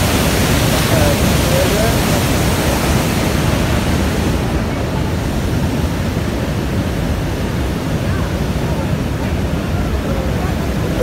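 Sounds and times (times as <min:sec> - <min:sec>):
waterfall roaring: 0:00.0 - 0:11.0.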